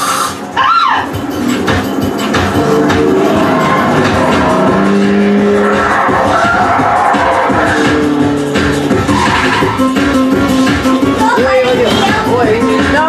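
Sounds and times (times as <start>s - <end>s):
film soundtrack music: 0.0s - 13.0s
racing car engines: 0.0s - 13.0s
tyres skidding: 0.0s - 13.0s.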